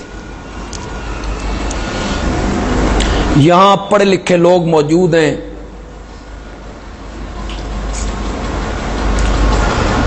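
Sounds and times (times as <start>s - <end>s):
steady rumbling noise: 0.0s - 10.0s.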